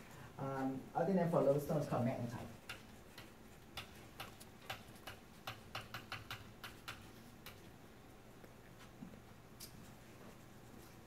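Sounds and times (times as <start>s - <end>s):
marker writing on whiteboard: 1.5s - 7.7s.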